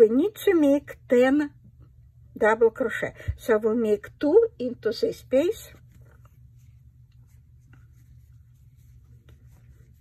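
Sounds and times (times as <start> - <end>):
yarn rustling with crochet hook: 5.7 - 10.0.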